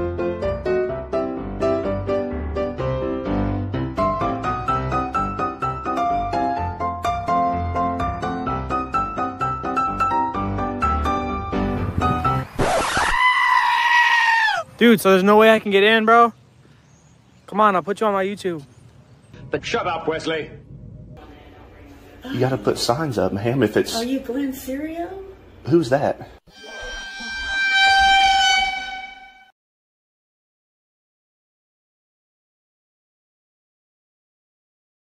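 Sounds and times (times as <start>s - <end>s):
piano music: 0.0s - 12.6s, 26.5s - 29.5s
long high-pitched scream: 12.7s - 14.7s, 26.5s - 29.5s
sustained horn-like note: 26.5s - 29.5s.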